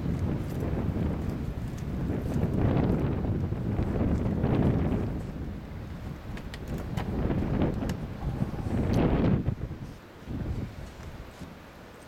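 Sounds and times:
wind buffeting microphone: 0:00.0 - 0:11.9.

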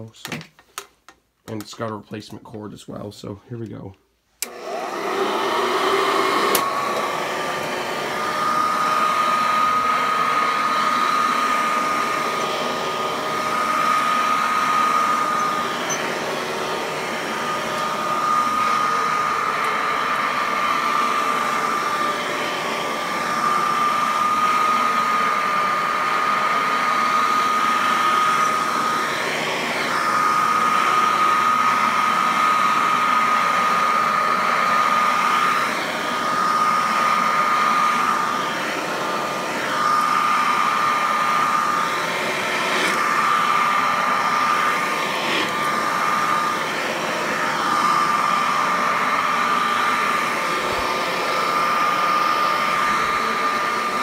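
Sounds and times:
vacuum cleaner on carpet: 0:04.4 - 0:54.0.

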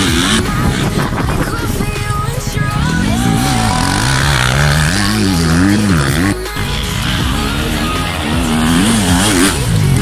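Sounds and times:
dirt bike engine revving: 0:00.0 - 0:10.0.

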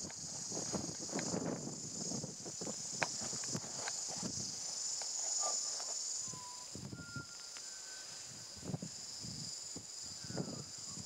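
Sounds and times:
high-pitched insect chorus: 0:00.0 - 0:11.0
faint short whistled notes: 0:06.2 - 0:08.2.

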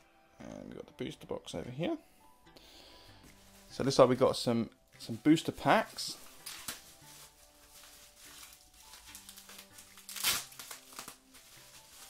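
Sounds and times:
faint background music: 0:00.0 - 0:12.0
bubble wrap crinkling: 0:03.2 - 0:04.2, 0:05.0 - 0:12.0.

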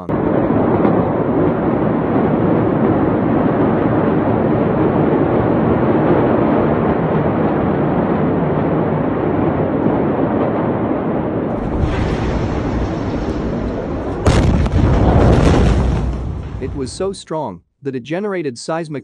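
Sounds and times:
low noise of burning port: 0:00.0 - 0:17.2
very loud explosion boom: 0:00.0 - 0:17.2.

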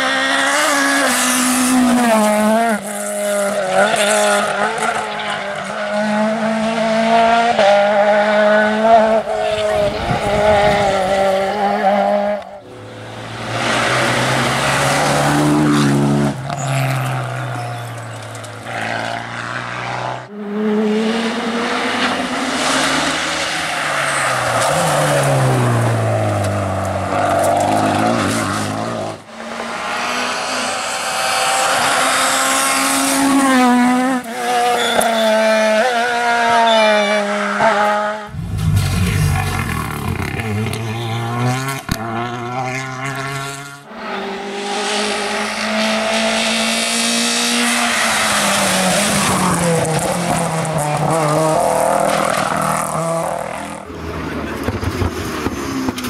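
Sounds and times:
rally car engines revving: 0:00.0 - 0:56.0
car passing by: 0:37.4 - 0:56.0.

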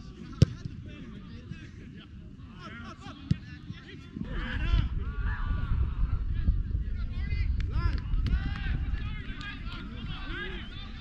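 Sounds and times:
low rumble: 0:04.3 - 0:11.0
distant players shouting: 0:07.8 - 0:11.0.

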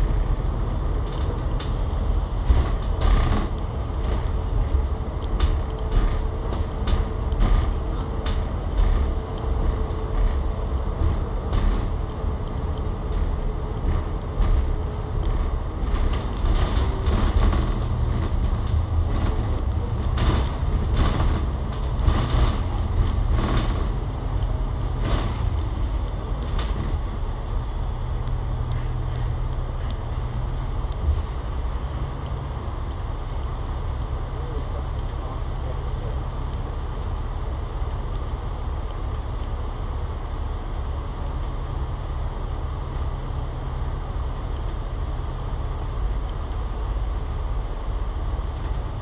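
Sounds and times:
bus body rattles and knocks: 0:00.0 - 0:49.0
bus engine and road rumble: 0:00.0 - 0:49.0.

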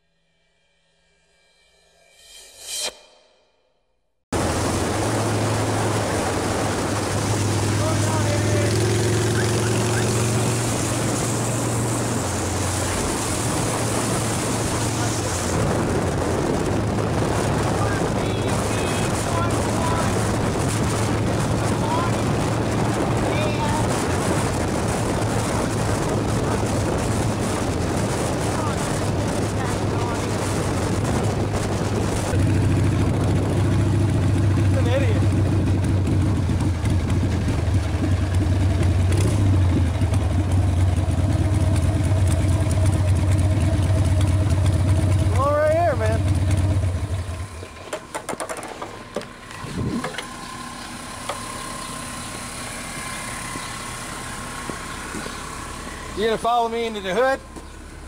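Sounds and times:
wind noise on microphone: 0:04.4 - 0:47.2, 0:49.5 - 0:50.6
motorcycle engine idling: 0:31.6 - 0:58.0.

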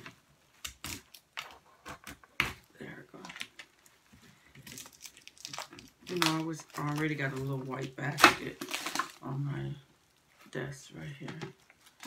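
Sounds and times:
plastic wrapping crackling: 0:02.9 - 0:09.6.

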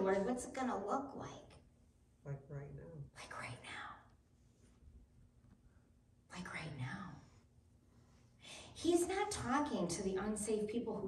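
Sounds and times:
woman whispering: 0:03.1 - 0:04.1, 0:06.3 - 0:07.3.

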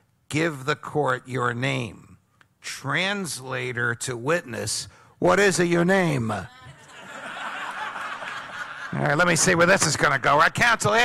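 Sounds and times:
audience laughing: 0:06.7 - 0:09.4.

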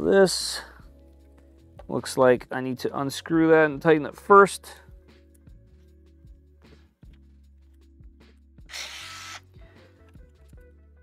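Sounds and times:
quiet jazzy ambient music: 0:00.0 - 0:08.7, 0:09.4 - 0:11.0.

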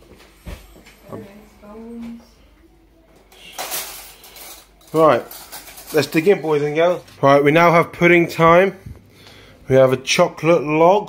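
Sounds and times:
cutlery scraping dishes: 0:03.3 - 0:07.0.

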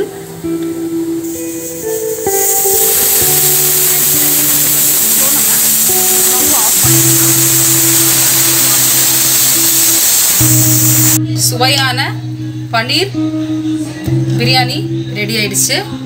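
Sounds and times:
background music: 0:00.0 - 0:16.0
pressure cooker whistling: 0:01.2 - 0:11.2.

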